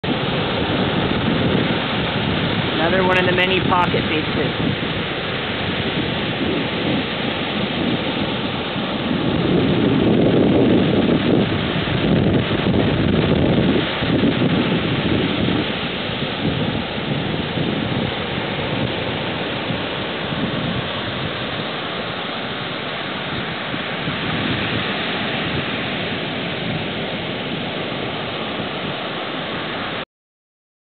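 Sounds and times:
ocean surf breaking: 0:00.0 - 0:30.0.

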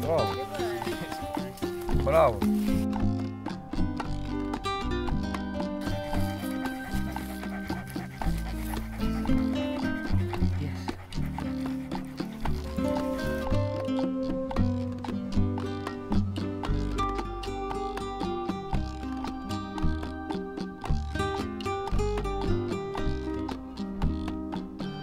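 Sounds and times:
background music with bass line: 0:00.0 - 0:25.0.

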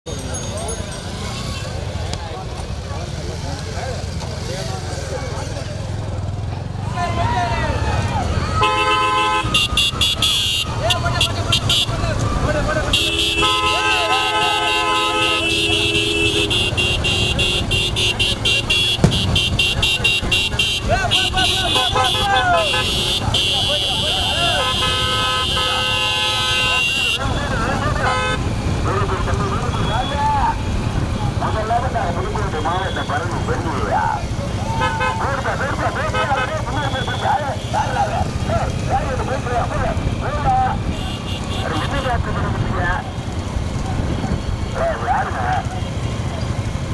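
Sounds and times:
motorcycle engines rumbling: 0:00.0 - 0:46.9
people shouting: 0:06.8 - 0:28.0, 0:34.4 - 0:38.6
vehicle horns honking: 0:08.5 - 0:33.8, 0:34.7 - 0:38.4, 0:40.8 - 0:42.4.

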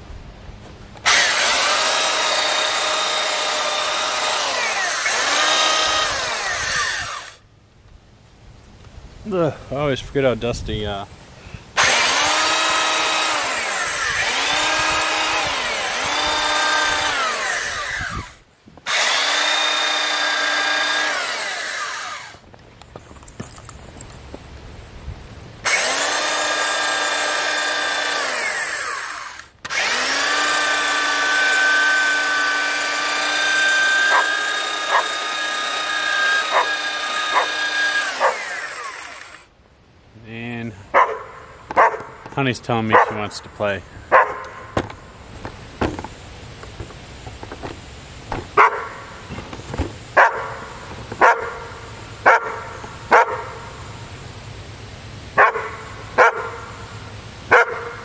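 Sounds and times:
belt sander motor whine: 0:01.0 - 0:07.4, 0:11.8 - 0:22.4, 0:25.7 - 0:39.5.

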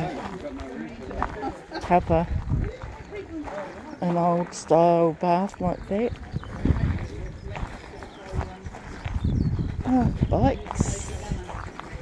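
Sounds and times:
footsteps on gravel: 0:00.0 - 0:12.0
people talking: 0:00.0 - 0:12.0.

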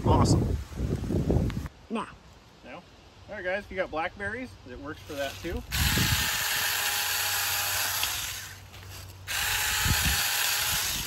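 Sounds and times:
electric chainsaw cutting: 0:05.0 - 0:11.0.

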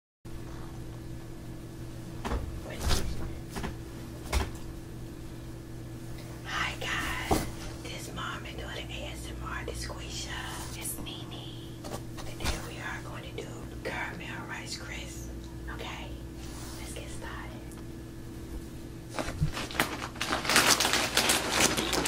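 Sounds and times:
steady low hum: 0:00.3 - 0:22.0
woman whispering: 0:06.4 - 0:17.8.

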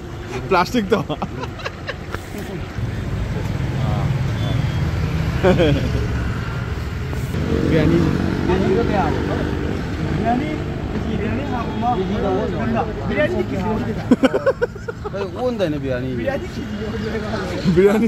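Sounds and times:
road traffic: 0:00.0 - 0:18.0
vehicle engine rumble: 0:00.0 - 0:18.0
men talking: 0:00.2 - 0:18.0.

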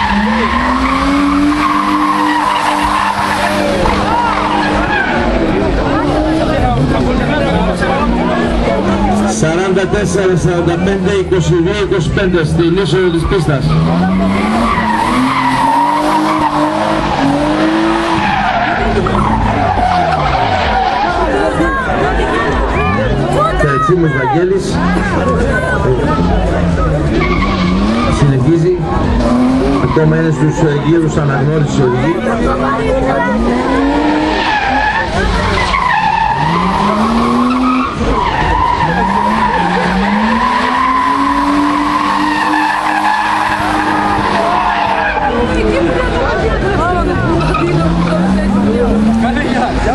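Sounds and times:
tyres squealing: 0:00.0 - 0:06.9, 0:13.4 - 0:23.9, 0:26.6 - 0:30.8, 0:32.7 - 0:49.9
car engine revving high: 0:00.0 - 0:49.9.

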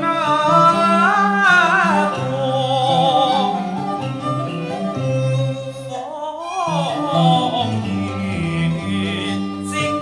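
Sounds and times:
opera singing voice: 0:00.0 - 0:10.0.

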